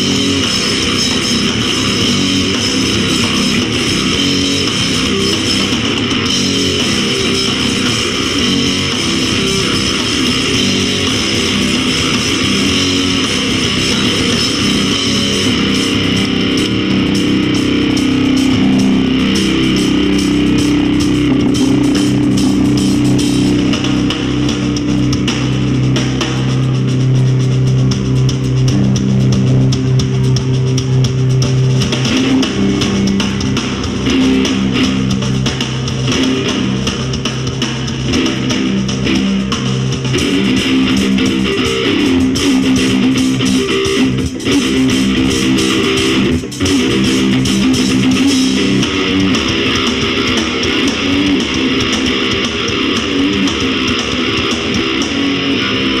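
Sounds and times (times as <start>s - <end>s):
bass guitar: 0.0s - 56.0s
drum kit: 0.0s - 56.0s
electric guitar: 0.0s - 56.0s.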